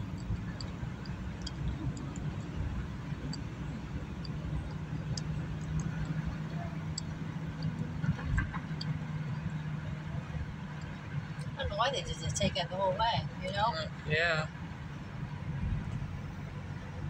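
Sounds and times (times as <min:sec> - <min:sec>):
engine hum: 0:00.0 - 0:17.0
road and tyre rumble: 0:00.0 - 0:17.0.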